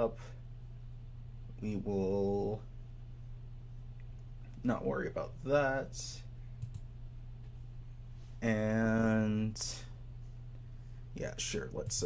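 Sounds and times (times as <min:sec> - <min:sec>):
steady low hum: 0:00.0 - 0:12.0
computer mouse clicks: 0:06.6 - 0:06.9.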